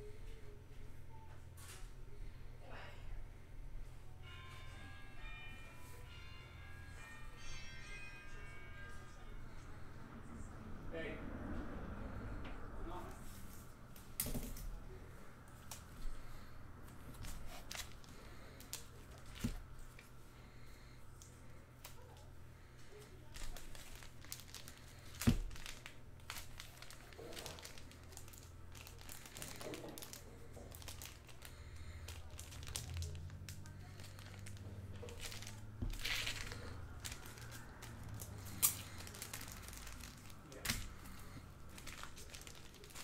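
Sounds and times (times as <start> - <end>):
low steady hum: 0.0 - 43.0
foil wrappers crinkling: 17.1 - 19.6, 23.0 - 43.0.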